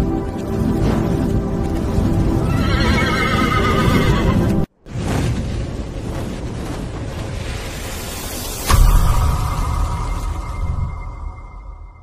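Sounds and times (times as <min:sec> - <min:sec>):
horse whinnying: 0:02.4 - 0:04.5.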